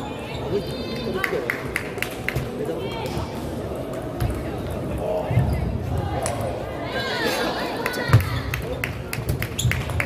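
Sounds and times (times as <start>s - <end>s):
hubbub of voices: 0.0s - 10.0s.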